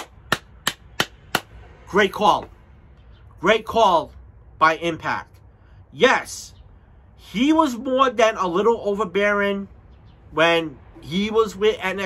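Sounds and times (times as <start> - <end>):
hand claps: 0.0 - 1.5.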